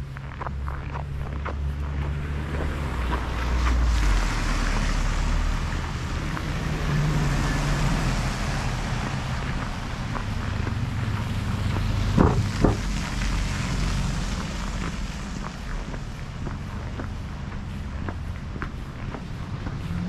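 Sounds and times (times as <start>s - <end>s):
wind rumble on microphone: 0.0s - 20.0s
tyres hissing on wet road: 1.6s - 20.0s.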